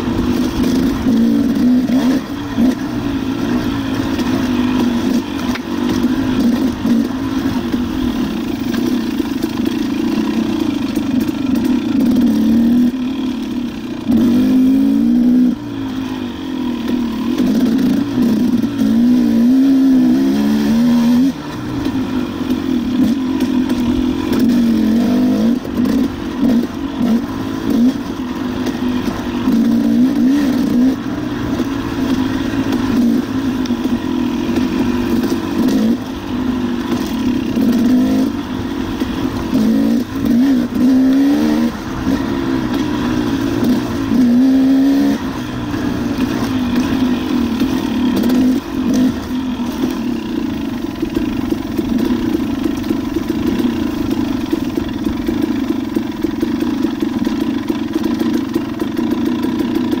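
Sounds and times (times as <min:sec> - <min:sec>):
motorcycle engine revving: 0:00.0 - 1:00.0.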